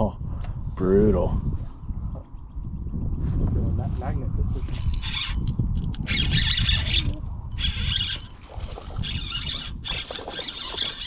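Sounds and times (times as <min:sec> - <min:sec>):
wind rumbling on microphone: 0:00.0 - 0:11.0
fishing reel whirring: 0:04.9 - 0:11.0.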